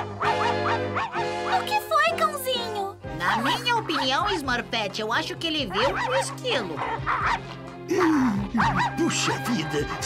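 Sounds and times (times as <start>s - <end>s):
cartoon dog barking: 0.0s - 1.7s, 5.6s - 7.4s, 8.6s - 9.3s
background music: 0.0s - 10.0s.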